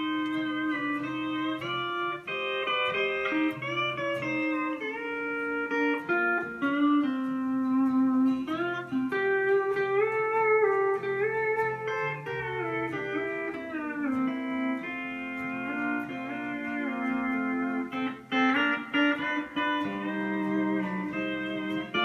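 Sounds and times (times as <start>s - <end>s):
pedal steel guitar chords: 0.0s - 22.0s
picked guitar notes: 0.0s - 22.0s.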